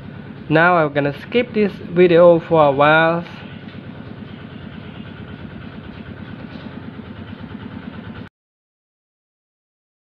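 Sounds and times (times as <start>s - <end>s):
small motor running: 0.0s - 8.3s.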